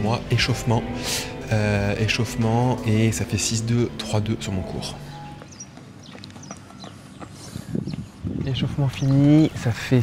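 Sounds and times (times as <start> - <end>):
small birds chirping: 4.6 - 10.0.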